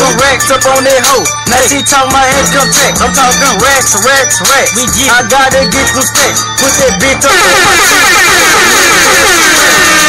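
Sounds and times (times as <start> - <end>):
steady backing tones: 0.0 - 7.3
rapping over a beat: 0.0 - 7.8.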